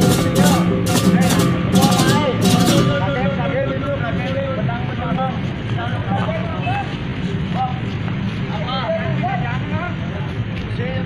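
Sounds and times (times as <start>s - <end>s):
men calling out: 0.0s - 4.4s
truck engine idling: 0.0s - 6.5s.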